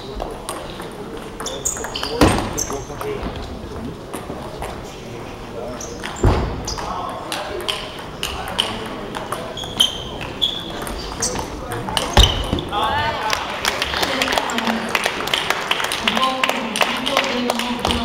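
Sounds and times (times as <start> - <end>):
spectators chattering: 0.0 - 18.0
loud thump: 6.2 - 6.7.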